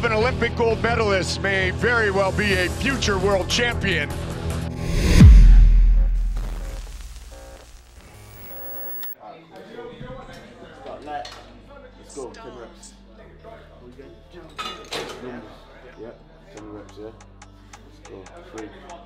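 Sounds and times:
intro logo sting: 4.8s - 9.2s.

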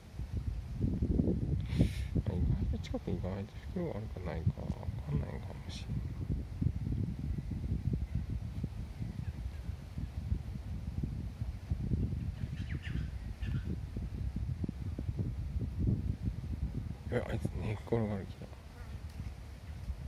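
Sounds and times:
wind buffeting microphone: 0.0s - 20.0s
faint bird chirps: 12.2s - 13.8s.

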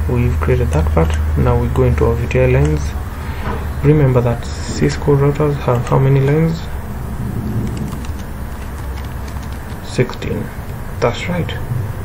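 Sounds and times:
low background hum: 0.0s - 12.0s
computer keyboard clicks: 7.6s - 9.9s.

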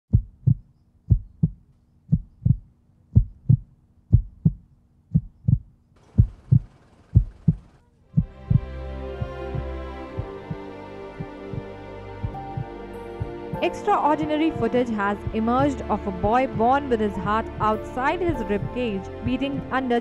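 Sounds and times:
heartbeat thumping: 0.1s - 13.7s, 14.5s - 19.8s
sustained music: 8.2s - 20.0s.

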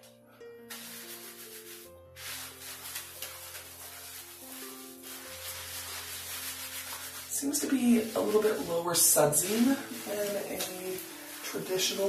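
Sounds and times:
soft background music: 0.0s - 12.0s
hands lathering shampoo in hair: 0.7s - 12.0s.

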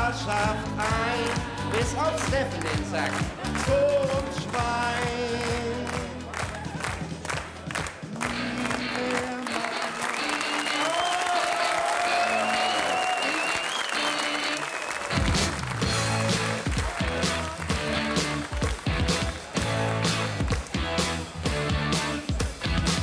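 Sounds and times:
rock band playing: 0.0s - 23.0s
studio audience applause: 0.8s - 23.0s.

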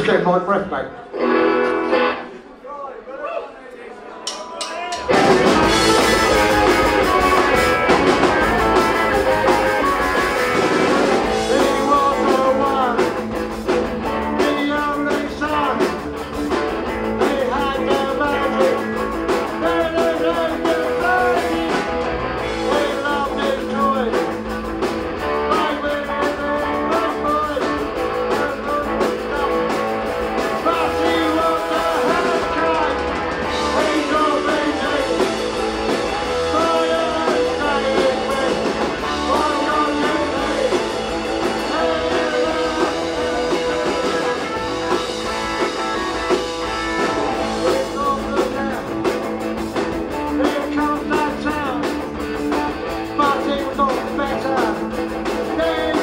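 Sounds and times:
punk rock band playing: 1.1s - 2.6s, 4.2s - 56.0s
man singing into microphone: 11.3s - 13.2s, 14.2s - 16.0s, 17.1s - 21.7s, 22.4s - 24.3s, 25.4s - 29.8s, 30.5s - 44.6s, 47.3s - 49.1s, 50.2s - 51.9s, 53.2s - 56.0s.

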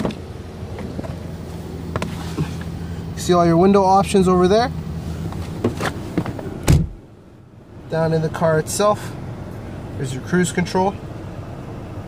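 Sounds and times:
car door shutting thunk: 0.0s - 1.2s, 5.4s - 7.0s
outside background noise: 0.0s - 12.0s.

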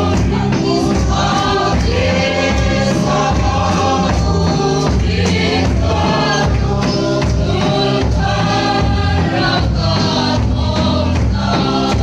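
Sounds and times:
congregation singing a hymn: 0.0s - 12.0s
hand drums beating: 0.0s - 12.0s.

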